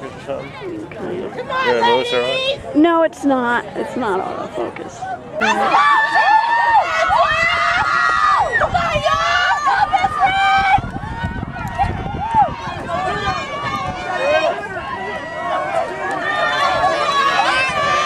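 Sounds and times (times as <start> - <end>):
spectators' voices overlapping: 0.0 - 18.0.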